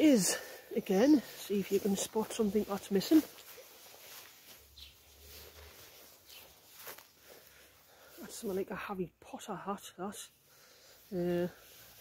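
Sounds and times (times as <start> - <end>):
faint footsteps on grass: 0.0 - 9.1, 10.6 - 12.0.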